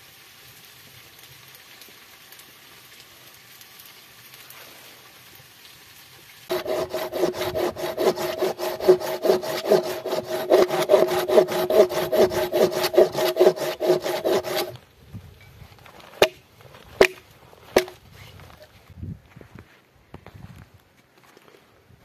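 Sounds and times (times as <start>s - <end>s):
hand saw cutting wood: 6.5s - 14.8s.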